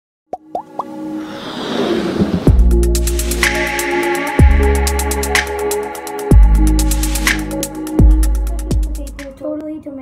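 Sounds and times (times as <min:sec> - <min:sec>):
electronic rising plops: 0:00.3 - 0:06.0
electronic swell: 0:00.9 - 0:08.5.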